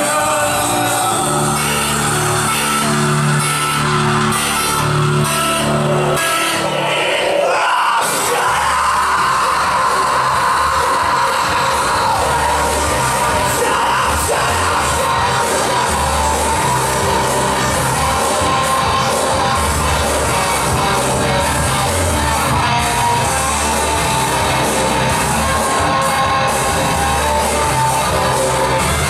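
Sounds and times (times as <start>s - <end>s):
live industrial rock music: 0.0s - 29.0s
pulsing bass line: 0.0s - 29.0s
man yelling into microphone: 7.5s - 12.5s, 13.2s - 15.3s.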